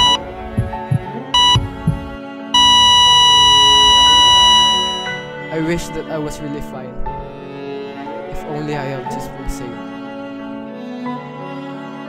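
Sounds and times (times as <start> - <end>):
low heartbeat thumps: 0.0 - 3.6
heart monitor beep: 0.0 - 5.3
flatline tone: 0.0 - 5.4
soft sustained music: 0.0 - 12.0.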